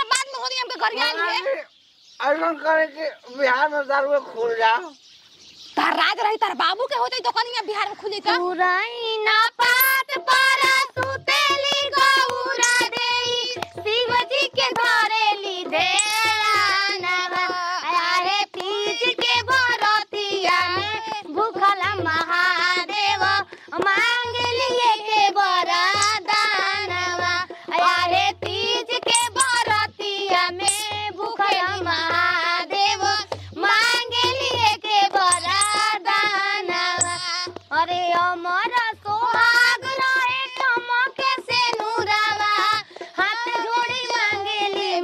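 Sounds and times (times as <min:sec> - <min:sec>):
woman singing high-pitched song: 0:05.8 - 0:45.0
high-pitched voice singing: 0:08.3 - 0:14.8, 0:15.6 - 0:16.7, 0:29.0 - 0:29.7, 0:30.5 - 0:31.8, 0:34.0 - 0:35.9, 0:37.0 - 0:37.9.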